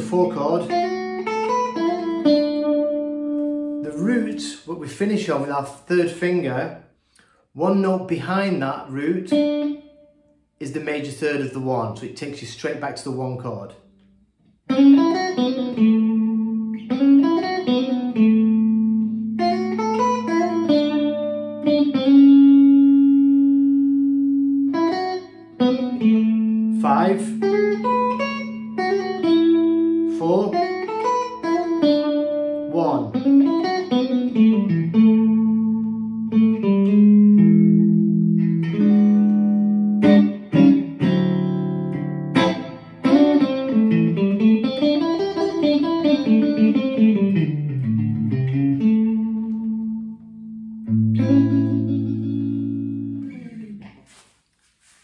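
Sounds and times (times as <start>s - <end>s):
electric guitar playing blues lead: 0.0s - 12.1s, 13.2s - 54.3s.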